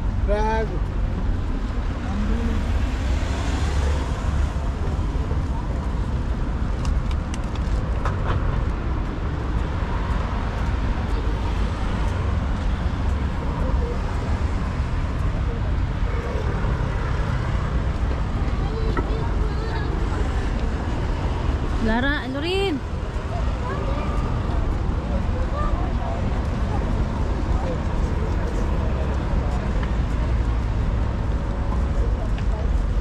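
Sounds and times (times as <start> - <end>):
city traffic rumble: 0.0 - 33.0.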